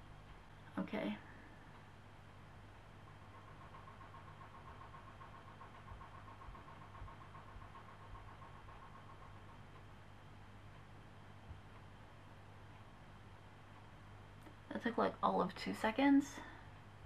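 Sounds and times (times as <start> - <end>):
clothes dryer humming: 0.0 - 17.0.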